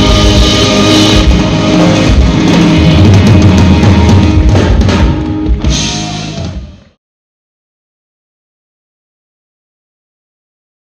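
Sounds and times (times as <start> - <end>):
rock band playing loud: 0.0 - 7.0.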